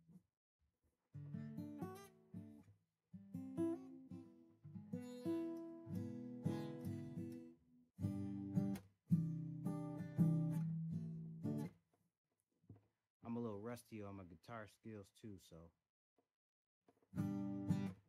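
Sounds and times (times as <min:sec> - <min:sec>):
acoustic guitar strummed chords: 0:04.8 - 0:11.6, 0:17.2 - 0:18.0.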